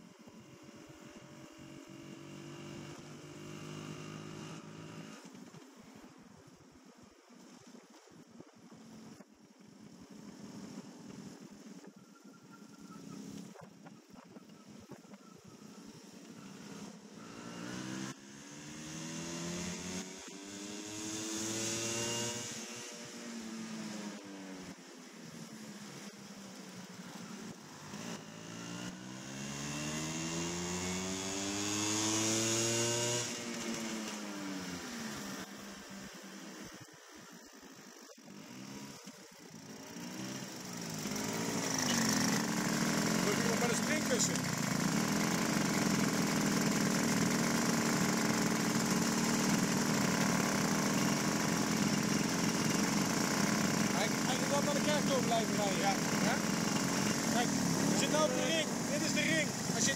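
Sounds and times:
moped engine: 0:00.0 - 0:06.1, 0:09.6 - 0:59.9.

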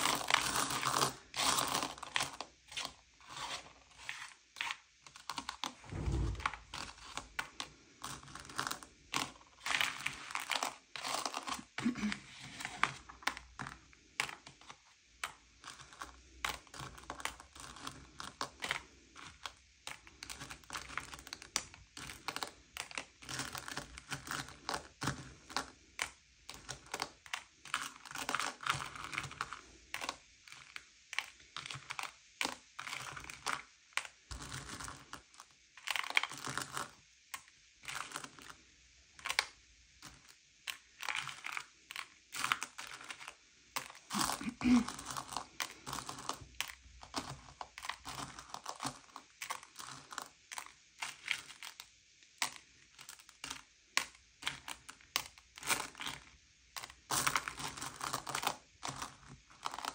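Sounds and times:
candies clicking and sliding: 0:00.0 - 0:05.8, 0:06.7 - 0:38.6, 0:39.2 - 0:59.9.

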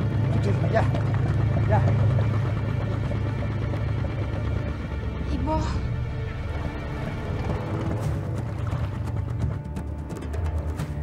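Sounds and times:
boat engine humming: 0:00.0 - 0:11.0.

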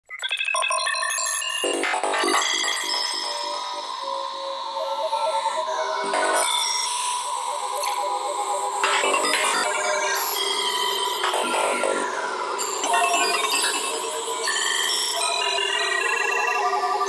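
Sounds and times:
bell-like synthesizer notes: 0:02.4 - 0:17.0
pulsing synth line: 0:04.6 - 0:17.0.

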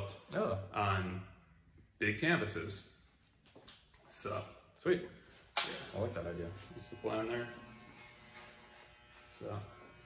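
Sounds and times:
electric hair clippers buzzing: 0:05.6 - 0:10.0.

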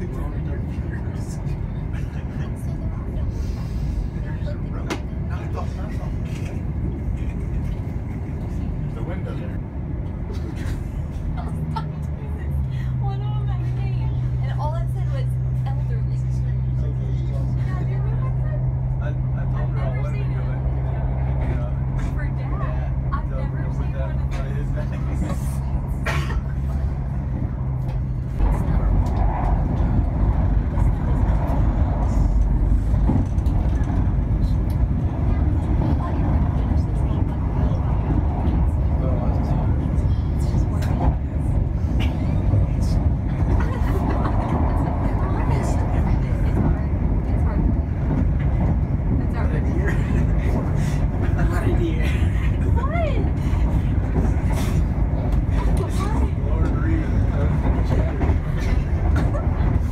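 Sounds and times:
rough rumble of train running: 0:00.0 - 0:59.9
train interior low hum: 0:00.0 - 0:59.9.

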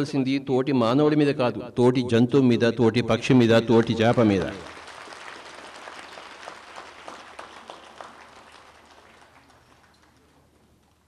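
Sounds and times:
audience applause: 0:03.8 - 0:11.0.

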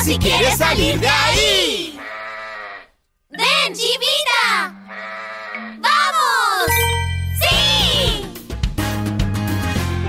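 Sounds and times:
cheerful children's music: 0:00.0 - 0:01.8, 0:03.3 - 0:04.9, 0:05.6 - 0:10.0
cartoon goat bleat: 0:01.9 - 0:03.0, 0:04.8 - 0:06.6.

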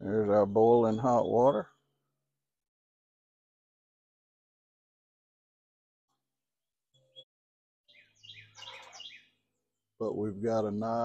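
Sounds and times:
bird chirping: 0:00.0 - 0:02.0, 0:06.9 - 0:07.3, 0:07.9 - 0:09.8.

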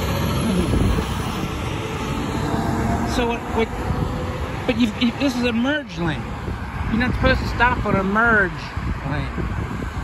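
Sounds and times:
road traffic passing: 0:00.0 - 0:10.0.

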